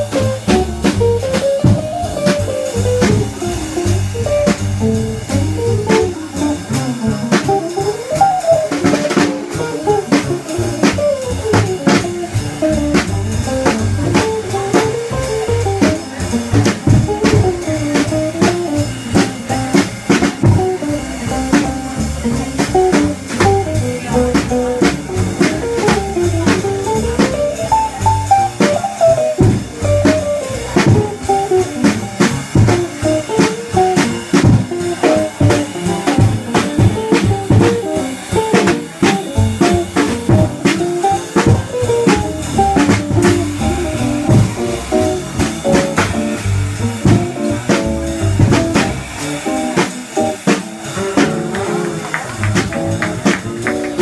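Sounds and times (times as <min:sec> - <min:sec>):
drum and cymbal strokes: 0:00.0 - 0:54.0
small-group jazz: 0:00.0 - 0:54.0.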